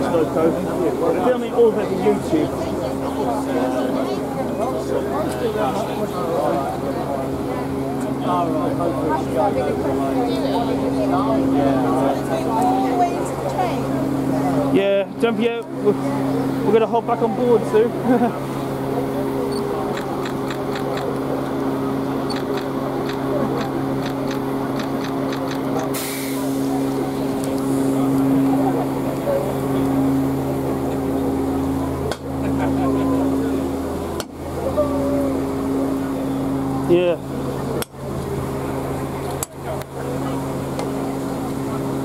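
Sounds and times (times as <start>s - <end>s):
low mechanical hum: 0.0s - 42.0s
people talking: 0.0s - 42.0s
short hiss: 25.9s - 26.7s.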